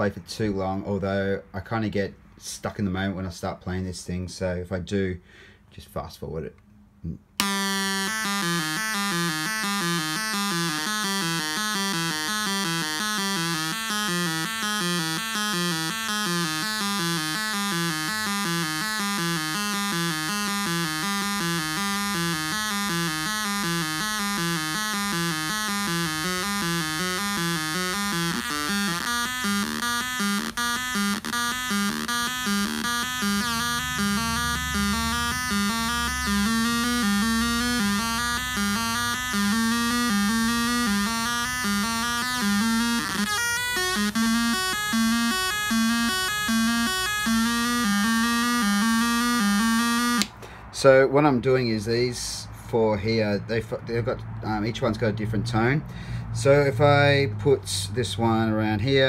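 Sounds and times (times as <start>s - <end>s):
buzzy synth sequencer pattern: 7.4s - 50.3s.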